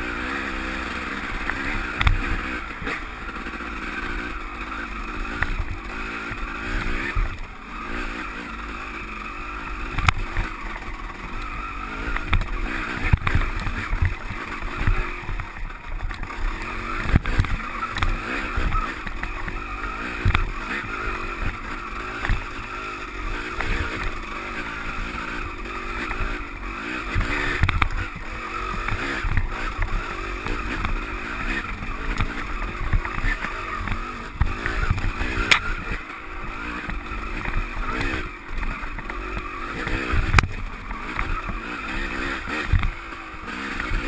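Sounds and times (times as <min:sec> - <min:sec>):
dirt bike engine revving: 0:00.0 - 0:44.0.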